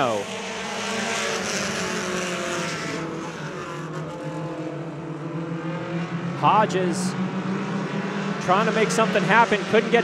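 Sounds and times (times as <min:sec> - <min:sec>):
race car engines: 0:00.0 - 0:10.0.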